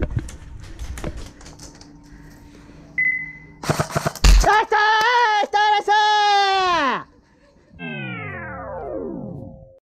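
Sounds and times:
descending pitched sound effect: 7.7 - 9.8.

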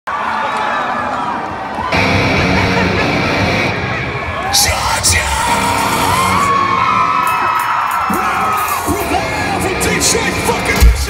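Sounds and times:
heavy rock band playing loudly: 1.9 - 4.3, 5.0 - 11.0.

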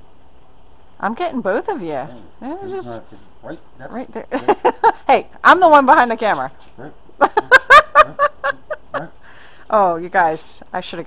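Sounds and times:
person laughing: 2.6 - 3.1, 3.9 - 5.1, 7.2 - 9.3.

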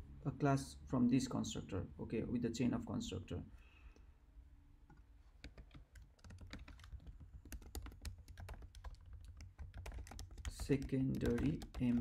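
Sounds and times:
faint keyboard typing: 4.9 - 12.0.

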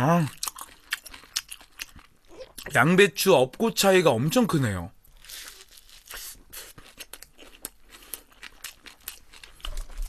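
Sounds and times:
chewing crunchy sandwich: 0.2 - 2.7, 5.1 - 10.0.

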